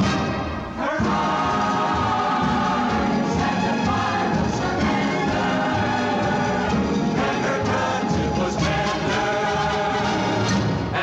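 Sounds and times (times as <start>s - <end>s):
orchestra playing: 0.0s - 11.0s
chorus singing: 0.1s - 11.0s.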